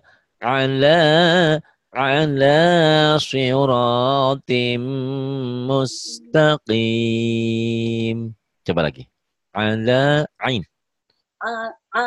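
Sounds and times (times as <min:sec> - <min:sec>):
person chanting recitation: 0:00.4 - 0:08.4, 0:09.6 - 0:10.7.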